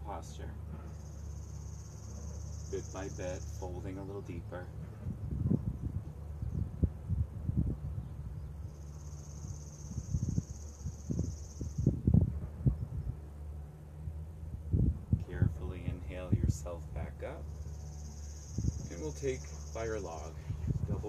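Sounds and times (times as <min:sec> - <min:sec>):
steady low hum: 0:00.0 - 0:21.0
wind buffeting microphone: 0:02.7 - 0:21.0.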